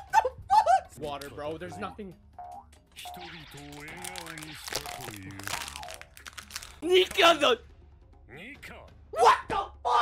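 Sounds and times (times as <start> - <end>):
plastic bottle crinkling: 3.7 - 6.8.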